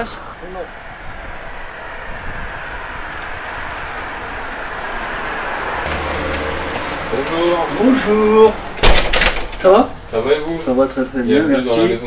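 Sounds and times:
passing vehicle engine and road noise: 0.0s - 12.0s.

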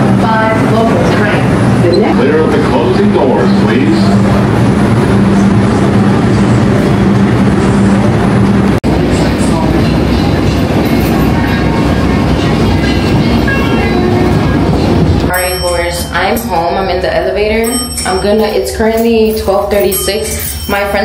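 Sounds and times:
loud noisy sound: 0.0s - 17.7s
steady hum inside train car: 0.0s - 21.0s
subway car rumbling: 0.0s - 21.0s.

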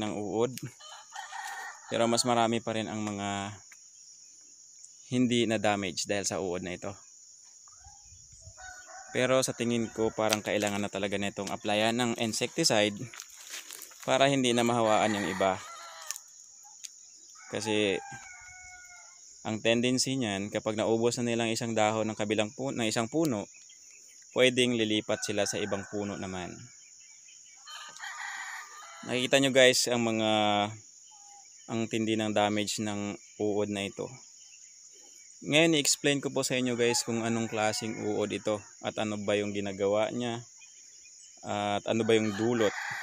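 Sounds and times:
insects droning: 0.0s - 43.0s
rooster crowing: 0.7s - 2.3s, 7.8s - 10.9s, 14.5s - 16.4s, 17.3s - 19.3s, 25.0s - 26.7s, 27.6s - 29.2s, 36.6s - 38.8s, 41.9s - 43.0s.

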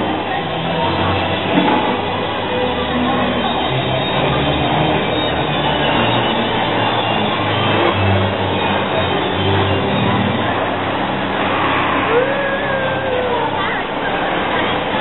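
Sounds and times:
roller coaster rumbling on track: 0.0s - 15.0s.

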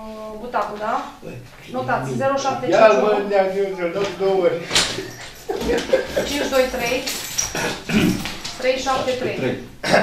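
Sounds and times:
people talking indistinctly: 0.0s - 9.8s.

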